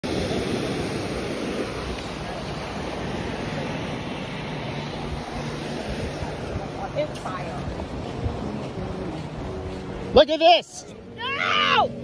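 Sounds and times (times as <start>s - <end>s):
wind rumbling on microphone: 0.0s - 10.2s
ocean surf washing onto beach: 0.0s - 10.5s.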